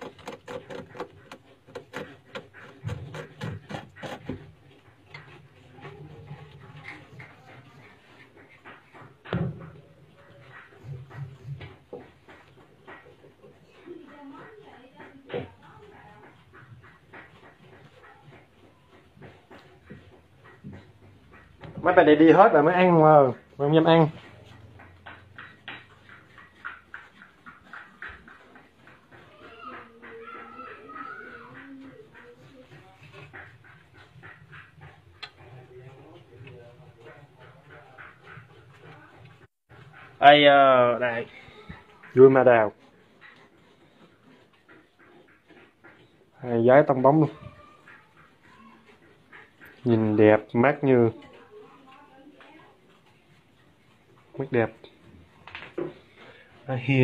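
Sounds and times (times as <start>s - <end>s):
bamboo rat sounds: 0.0s - 57.0s.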